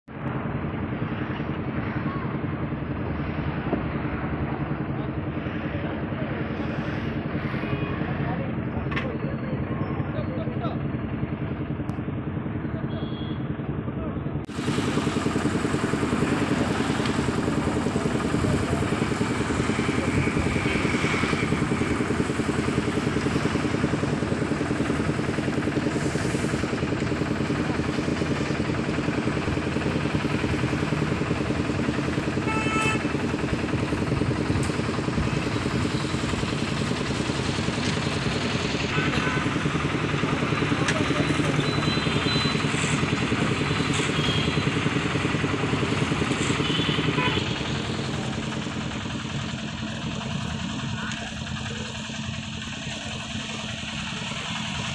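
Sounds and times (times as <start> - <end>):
engine running: 0.1 - 54.9.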